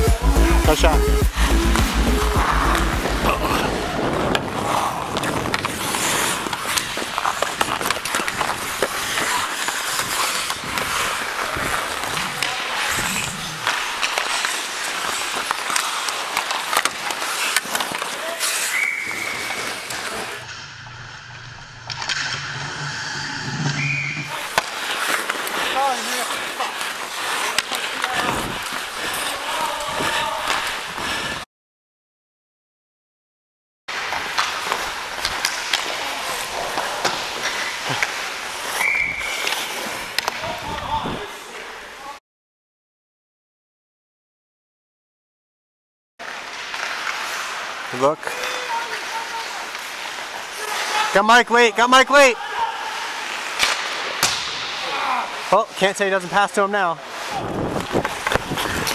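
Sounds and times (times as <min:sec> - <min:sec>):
ice skate blades scraping: 0:01.8 - 0:21.1, 0:21.7 - 0:31.4, 0:33.9 - 0:40.6, 0:46.2 - 0:51.2, 0:57.0 - 0:58.9
sticks and puck clacking: 0:04.3 - 0:20.6, 0:21.8 - 0:22.6, 0:23.6 - 0:31.4, 0:33.9 - 0:40.9, 0:46.2 - 0:51.2, 0:52.9 - 0:58.9.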